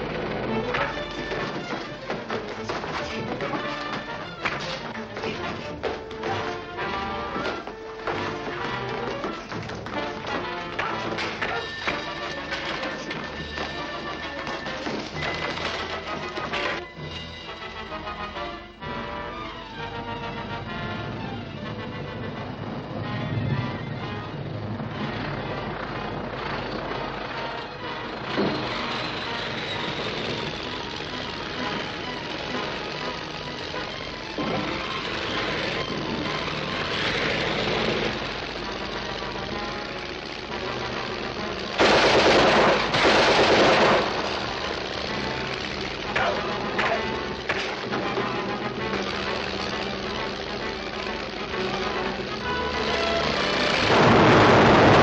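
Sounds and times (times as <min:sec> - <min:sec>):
dramatic orchestral music: 0:00.0 - 0:55.0
loud noisy burst: 0:22.6 - 0:48.0, 0:48.6 - 0:55.0
rapid gunfire: 0:36.5 - 0:48.2.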